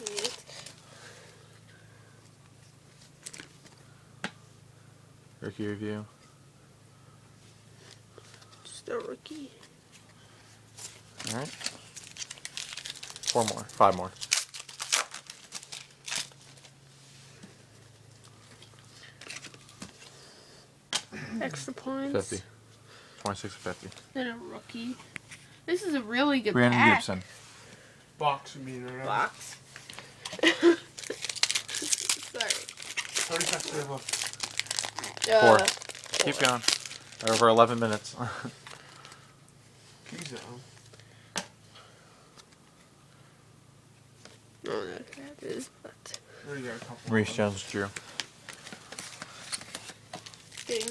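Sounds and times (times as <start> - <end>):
card pack wrappers crinkling: 0.0 - 0.8, 3.1 - 3.8, 11.2 - 16.8, 29.8 - 38.0, 47.3 - 50.9
cards shuffled by hand: 0.0 - 0.8, 30.9 - 38.0, 47.6 - 50.9.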